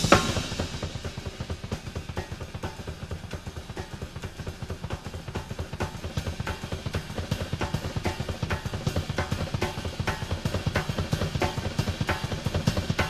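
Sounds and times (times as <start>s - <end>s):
cymbals ringing: 0.0s - 2.1s
bass drum strokes: 0.0s - 13.0s.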